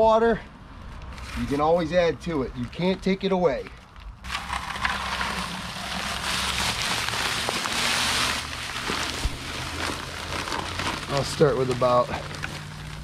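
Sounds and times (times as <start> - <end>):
concrete mix pouring into water: 4.2 - 13.0.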